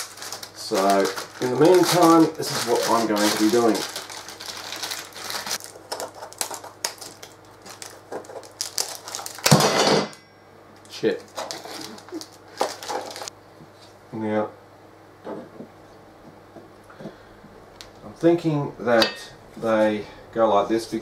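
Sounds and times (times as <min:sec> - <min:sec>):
plastic bag crinkling: 0:00.0 - 0:09.6, 0:10.9 - 0:13.3.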